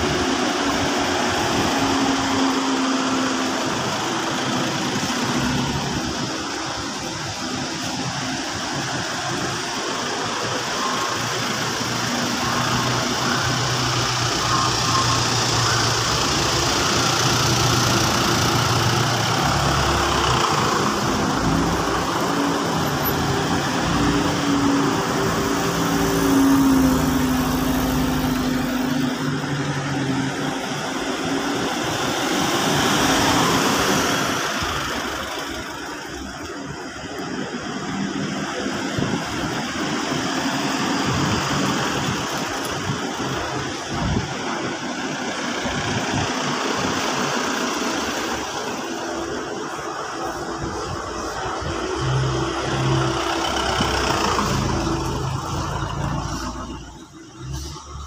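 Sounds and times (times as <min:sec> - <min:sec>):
vans driving past slowly: 0:00.0 - 0:58.0.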